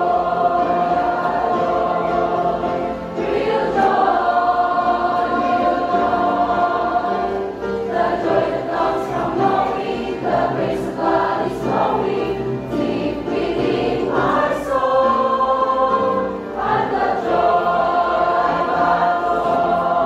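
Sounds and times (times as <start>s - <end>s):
choir singing a gospel song: 0.0s - 20.0s.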